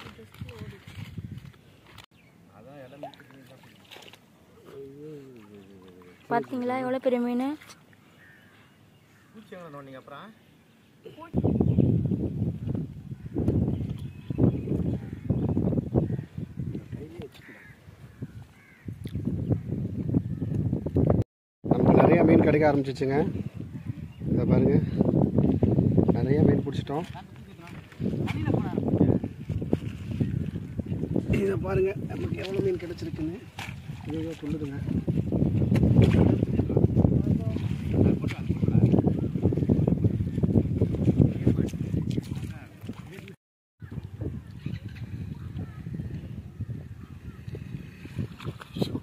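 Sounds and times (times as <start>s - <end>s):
water sloshing: 0.0s - 2.1s, 2.8s - 10.0s, 26.5s - 44.7s, 47.4s - 49.0s
men talking: 2.5s - 6.3s, 9.3s - 10.4s, 16.8s - 17.6s, 21.8s - 23.6s, 24.3s - 25.1s, 26.0s - 28.0s, 31.2s - 35.1s, 36.4s - 39.5s
bird calling faintly: 7.6s - 11.8s.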